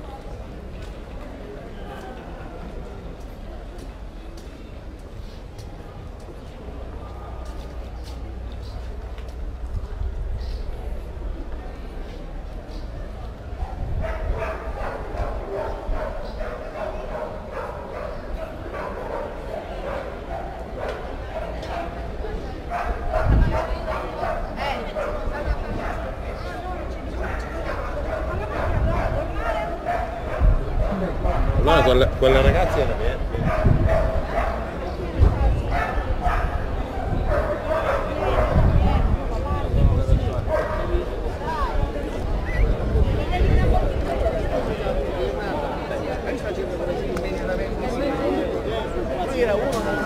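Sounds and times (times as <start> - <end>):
people's voices: 0.0 - 50.0
street crowd chatter: 0.0 - 50.0
dog barking: 13.7 - 22.0, 22.7 - 26.0, 27.2 - 31.5, 33.4 - 34.7, 35.7 - 38.8, 40.5 - 41.0.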